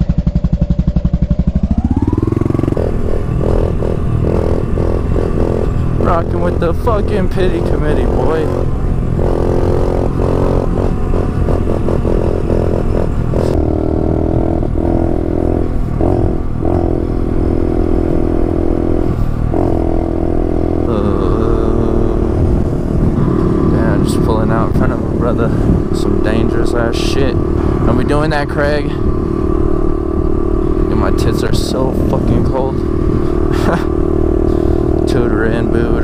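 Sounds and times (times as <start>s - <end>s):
small motorbike engine running: 0.0s - 36.0s
wind rumbling on microphone: 0.0s - 36.0s.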